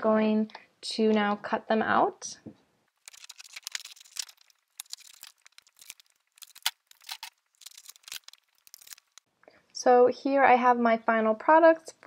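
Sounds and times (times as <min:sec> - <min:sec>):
plastic laminate crinkling: 0:03.0 - 0:09.2.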